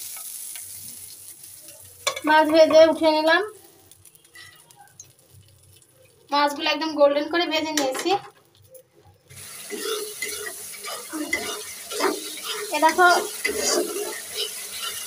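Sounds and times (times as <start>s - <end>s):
spice paste sizzling in hot oil: 0.0s - 15.0s
metal spatula scraping pan: 9.4s - 15.0s.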